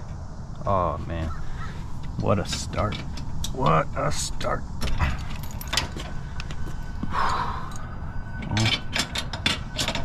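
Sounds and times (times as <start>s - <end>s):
light metallic clinks: 4.8s - 10.0s.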